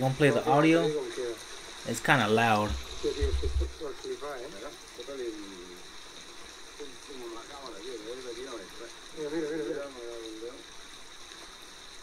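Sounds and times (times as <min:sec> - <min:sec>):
men talking: 0:00.0 - 0:05.9, 0:06.7 - 0:10.7
steady hiss: 0:00.0 - 0:12.0
low rumble: 0:02.7 - 0:03.8.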